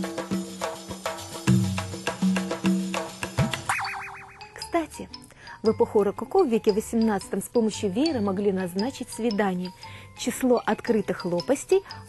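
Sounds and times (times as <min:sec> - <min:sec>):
cartoon boing: 0:03.7 - 0:04.6
rapid warbling whistle: 0:03.7 - 0:04.7.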